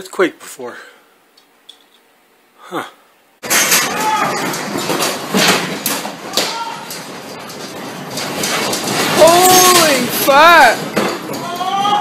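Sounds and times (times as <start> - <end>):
house rattling and clattering: 3.4 - 12.0.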